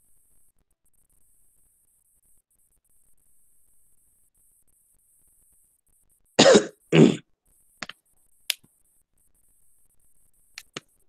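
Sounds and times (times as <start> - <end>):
person coughing: 6.4 - 7.2
faint clicks: 10.5 - 11.0.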